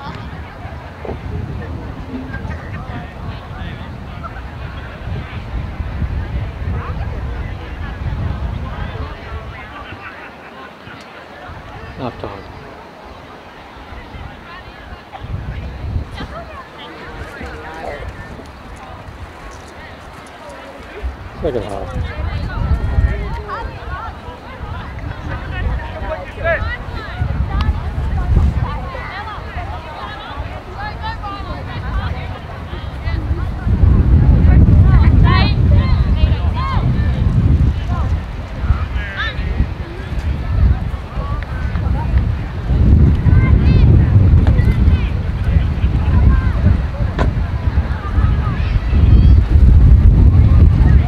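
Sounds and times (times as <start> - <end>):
wind rumble on microphone: 0.0 - 10.2, 10.9 - 51.0.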